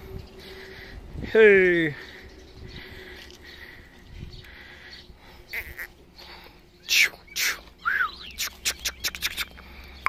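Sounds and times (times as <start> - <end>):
high animal calls: 5.5 - 6.0.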